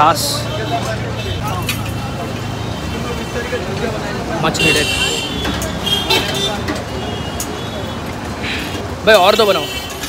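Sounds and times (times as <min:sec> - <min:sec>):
background chatter: 0:00.0 - 0:10.0
traffic noise: 0:00.0 - 0:10.0.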